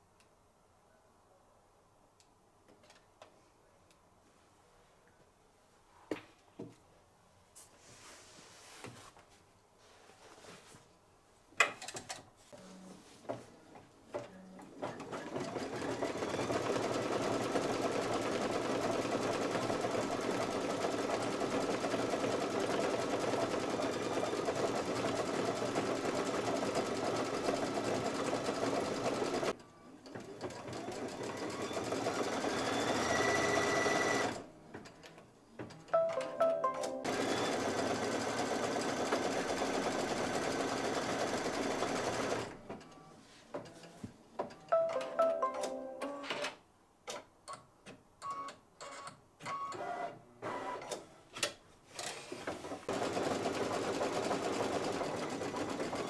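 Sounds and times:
embroidery machine stitching: 0:14.8 - 0:34.4, 0:37.1 - 0:42.6, 0:52.0 - 0:56.0.

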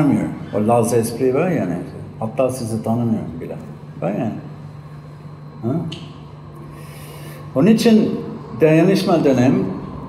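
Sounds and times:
man speaking: 0:00.0 - 0:04.6, 0:07.5 - 0:09.8.

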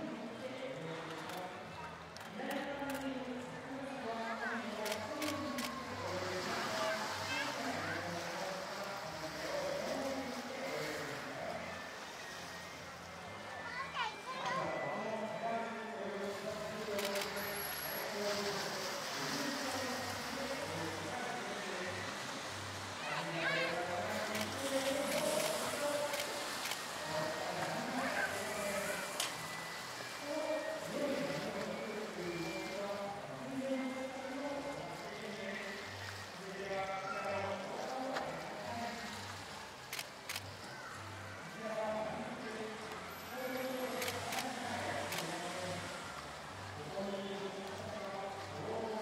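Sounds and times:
faint voices: 0:00.0 - 0:49.0
moving water: 0:00.0 - 0:49.0
wind: 0:00.0 - 0:49.0.

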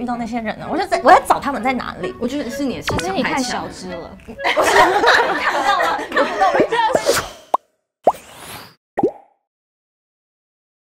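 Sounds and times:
cartoon pops rising in pitch: 0:06.9 - 0:09.4.

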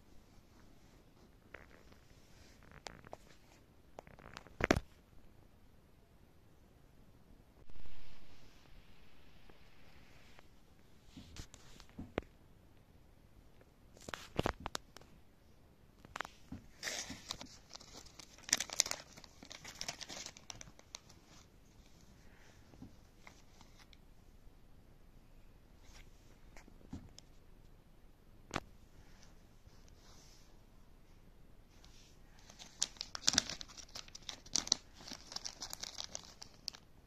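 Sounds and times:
plastic bag crinkling: 0:16.8 - 0:21.5, 0:32.4 - 0:36.8.

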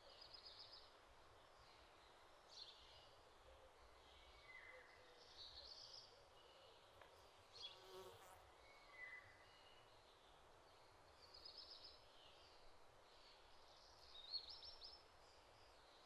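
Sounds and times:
insect buzzing: 0:07.7 - 0:08.4.

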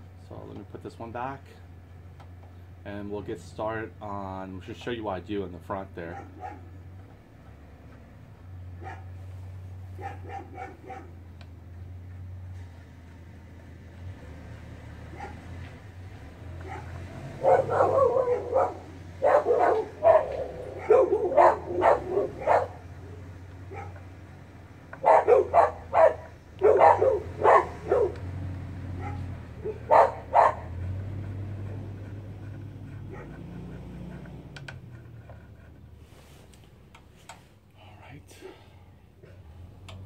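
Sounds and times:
dog barking: 0:06.1 - 0:06.8, 0:08.8 - 0:09.2, 0:10.0 - 0:11.2, 0:15.1 - 0:15.5, 0:16.6 - 0:24.1, 0:25.0 - 0:28.3, 0:28.9 - 0:31.0, 0:33.0 - 0:33.6.

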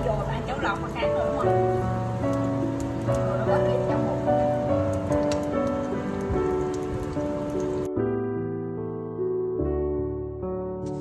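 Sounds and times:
sausages sizzling in oil: 0:00.0 - 0:07.9
background music: 0:00.0 - 0:11.0.

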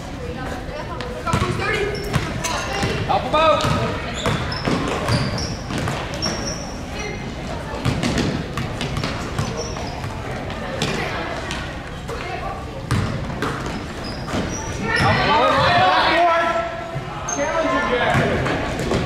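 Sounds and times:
voices echoing in hall: 0:00.0 - 0:19.0
sneakers squeaking: 0:00.2 - 0:19.0
basketball bouncing on hardwood floor: 0:03.6 - 0:06.0, 0:07.8 - 0:09.5.

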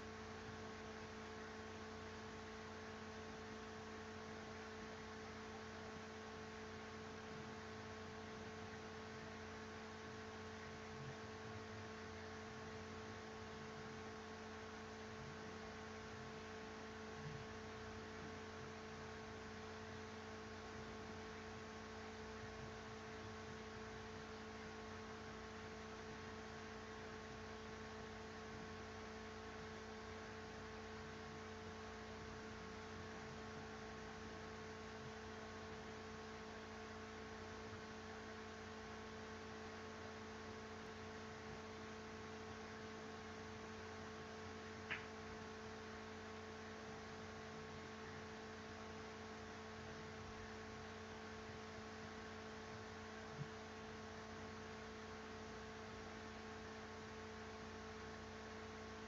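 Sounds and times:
electrical hum: 0:00.0 - 0:59.0
small tick: 0:44.8 - 0:45.2.

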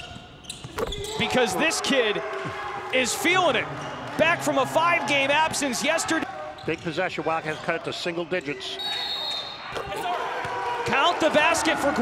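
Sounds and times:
players shouting: 0:01.0 - 0:07.7, 0:08.4 - 0:12.0
referee's whistle: 0:08.6 - 0:09.7.

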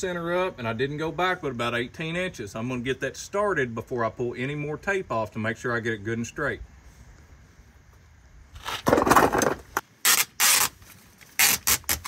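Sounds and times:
fingers scraping adhesive strip: 0:10.0 - 0:10.8, 0:11.4 - 0:12.0.

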